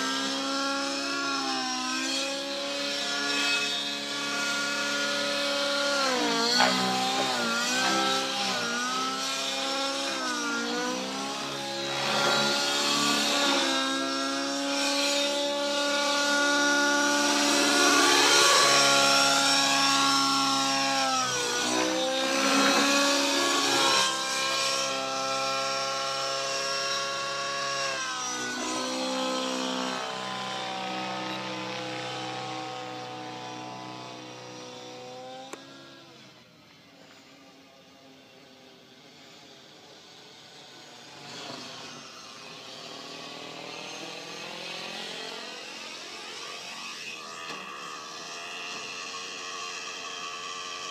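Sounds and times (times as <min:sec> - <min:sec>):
model helicopter engine and rotor: 0:00.0 - 0:50.9.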